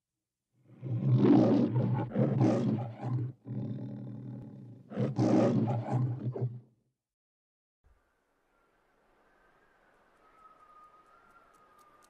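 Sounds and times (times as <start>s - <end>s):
lion growling: 0.7s - 6.6s
lion roaring: 0.8s - 6.6s.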